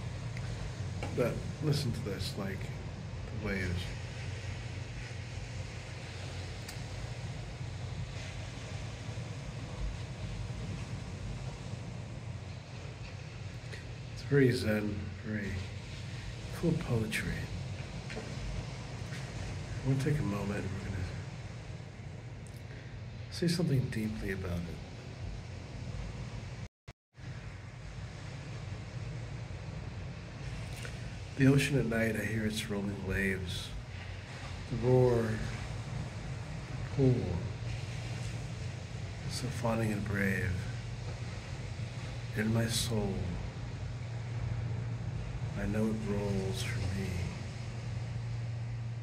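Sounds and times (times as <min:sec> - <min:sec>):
ocean waves breaking: 0:00.0 - 0:49.0.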